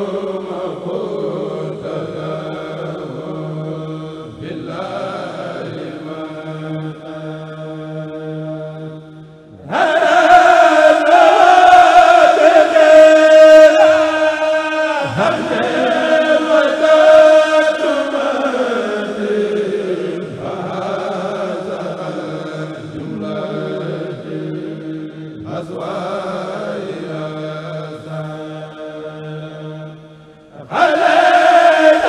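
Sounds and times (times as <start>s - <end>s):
men chanting in unison: 0.0s - 32.0s.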